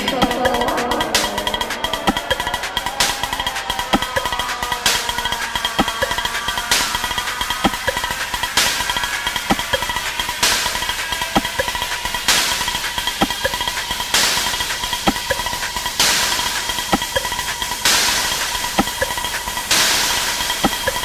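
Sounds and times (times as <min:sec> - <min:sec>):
steady high tones: 0:00.0 - 0:12.6, 0:13.2 - 0:13.9
fast light ticking: 0:00.0 - 0:21.0
hiss bursts in electronic track: 0:00.0 - 0:21.0.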